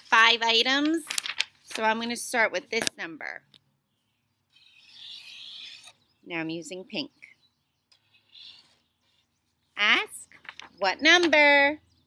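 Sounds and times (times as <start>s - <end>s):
marker scratching on paper: 4.5s - 6.0s, 8.0s - 9.3s.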